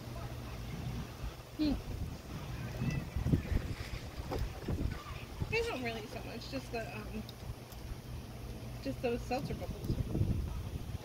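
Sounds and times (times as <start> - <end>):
wind buffeting microphone: 0.4 - 11.0.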